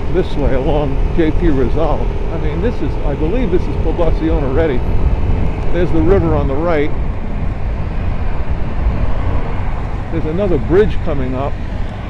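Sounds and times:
motorcycle rumble: 0.0 - 12.0
wind rushing over microphone: 0.0 - 12.0.

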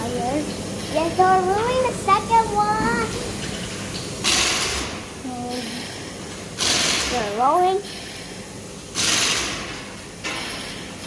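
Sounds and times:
pneumatic impact wrench bursts: 4.2 - 5.0, 6.6 - 7.2, 8.9 - 10.8.

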